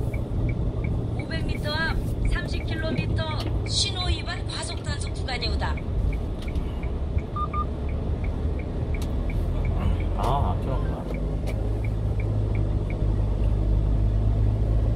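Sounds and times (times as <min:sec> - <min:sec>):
truck engine and road rumble: 0:00.0 - 0:14.9
turn signal ticking: 0:00.0 - 0:14.9
short double beep: 0:07.4 - 0:07.7.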